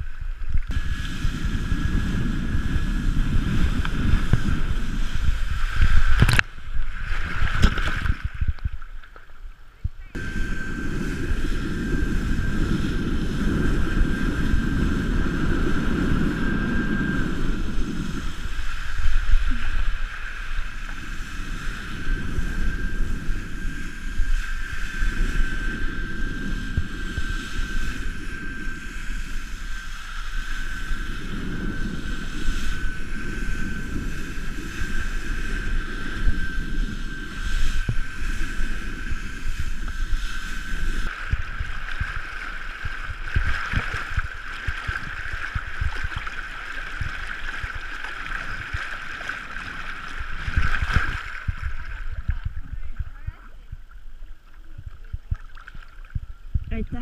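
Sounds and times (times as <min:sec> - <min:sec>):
thin high whine: 0:00.0 - 0:57.0
wind buffeting microphone: 0:00.0 - 0:57.0
water rushing: 0:10.2 - 0:56.1.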